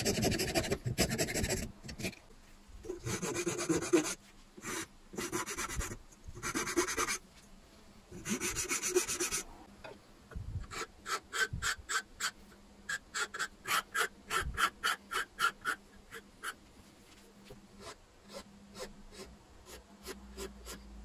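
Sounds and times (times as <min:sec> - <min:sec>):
hand file rasping on wood: 0:13.2 - 0:16.6.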